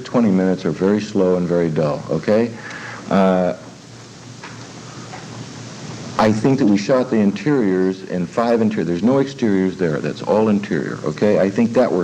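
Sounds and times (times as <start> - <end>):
old recording hiss: 0.0 - 12.0.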